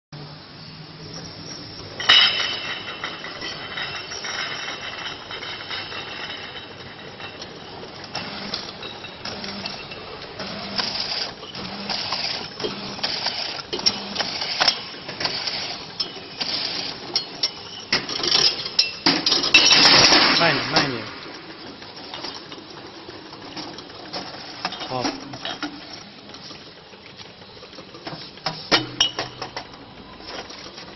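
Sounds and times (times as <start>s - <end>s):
machine clicking and clattering: 2.0s - 26.4s.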